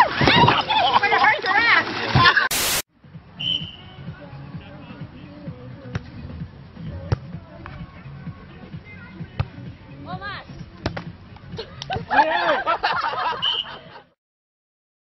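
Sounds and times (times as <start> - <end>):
hands hitting volleyball: 10.8 - 11.1.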